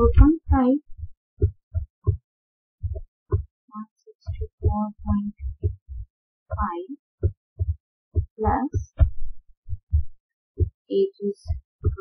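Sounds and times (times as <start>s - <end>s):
low dull thumps: 0.0s - 2.2s, 2.8s - 3.5s, 4.2s - 10.8s, 11.4s - 12.0s.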